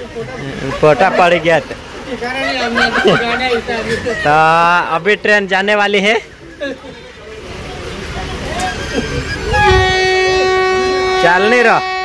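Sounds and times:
train horn long note: 9.5 - 12.0.

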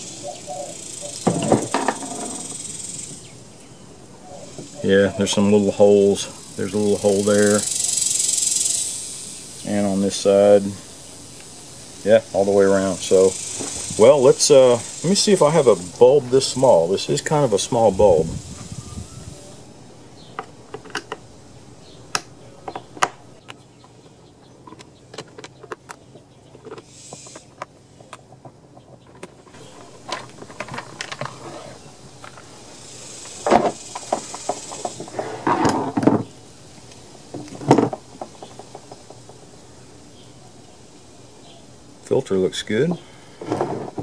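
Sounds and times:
plastic housing clicks and knocks: 20.4 - 21.2.

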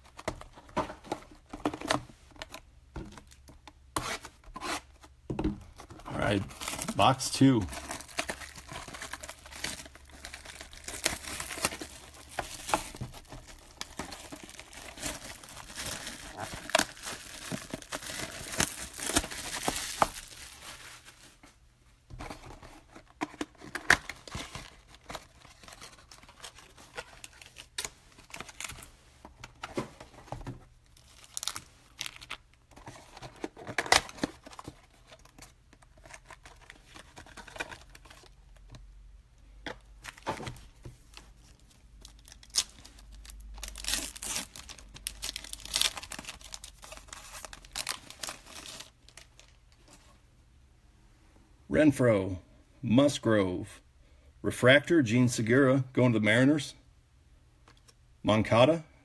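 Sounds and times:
plastic shrink-wrap crinkling and tearing: 6.3 - 21.4, 30.9 - 32.6, 42.0 - 49.7.

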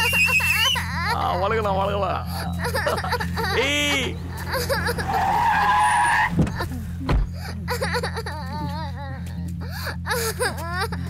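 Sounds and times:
car tyres squealing: 0.0 - 1.2, 2.2 - 6.9
short thud: 6.3 - 7.4.

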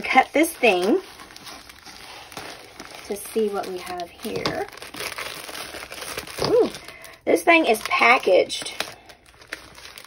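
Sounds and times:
plastic shrink wrap rustling: 0.0 - 10.0.

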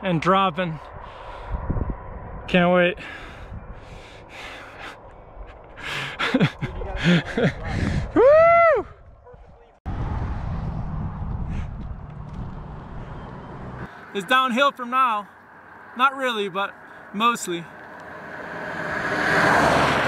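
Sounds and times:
steady low rumble: 0.8 - 13.9
men laughing and gasping: 4.2 - 8.9
loud whoop: 8.2 - 9.0.

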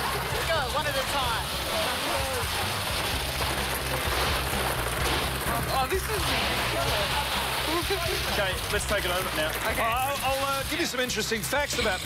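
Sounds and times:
background music: 0.0 - 12.0
plastic balls clattering: 0.0 - 12.0.

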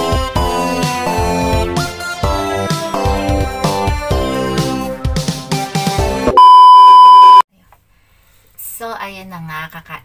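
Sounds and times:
background music: 0.0 - 6.4
loud electronic bleep: 6.3 - 7.4.

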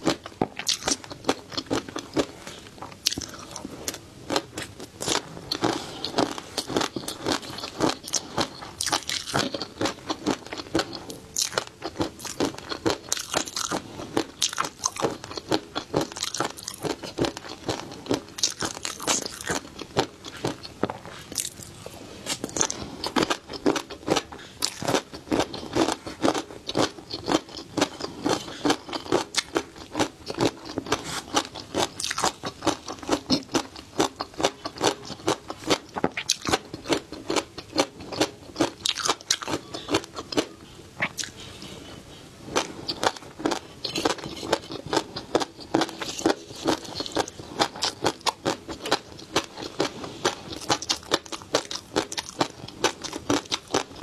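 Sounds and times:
chewing crispy food: 0.0 - 54.0.

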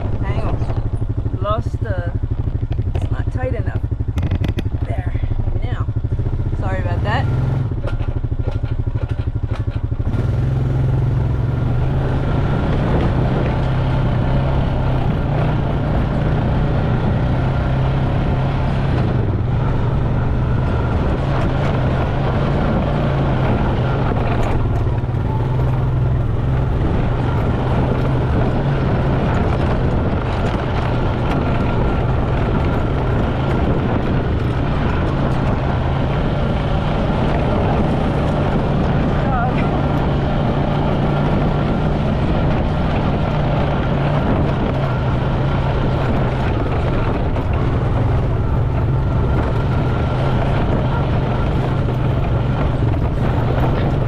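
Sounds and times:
atv engine running: 0.0 - 54.0.

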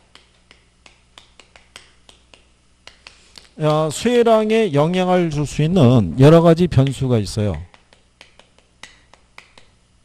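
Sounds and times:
man speaking: 3.6 - 7.7.

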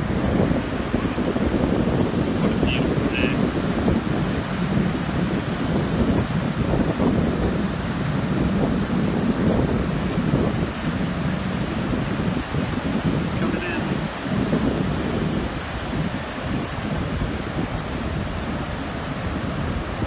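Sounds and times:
ocean surf breaking: 0.0 - 20.0
wind buffeting microphone: 0.0 - 20.0.

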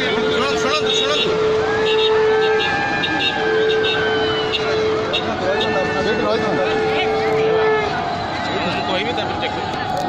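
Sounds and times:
people talking: 4.5 - 10.0.

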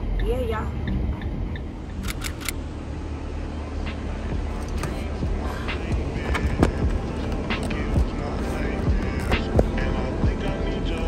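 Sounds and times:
road noise: 0.0 - 11.0
van engine rumble: 0.0 - 11.0
sharp clicks: 1.9 - 2.6.

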